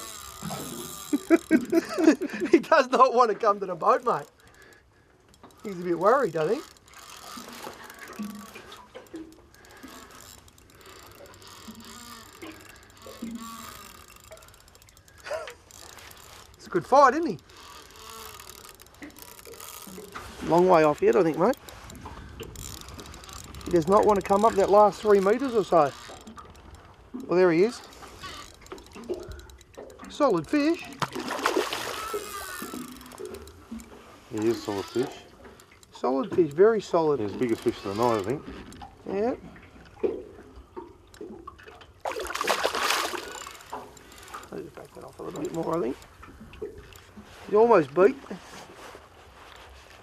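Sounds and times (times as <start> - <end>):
fishing reel ratcheting clicks: 0.0 - 39.3, 42.1 - 48.0
fish splashing at water surface: 26.0 - 36.6, 39.9 - 47.5.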